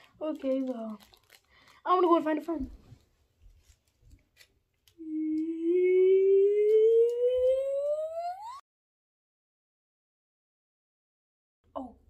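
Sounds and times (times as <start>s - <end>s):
person humming rising note: 5.0s - 8.6s.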